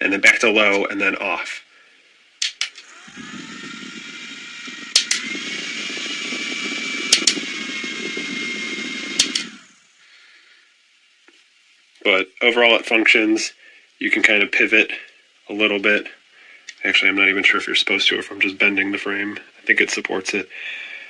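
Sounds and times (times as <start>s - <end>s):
small fan whirring: 0.0s - 21.0s
fan power button clicks: 4.6s - 5.4s, 6.8s - 7.6s, 9.1s - 9.6s.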